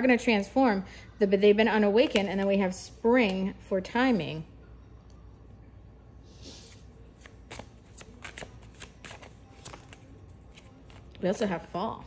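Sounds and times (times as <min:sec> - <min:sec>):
cards being shuffled: 0:06.6 - 0:11.2.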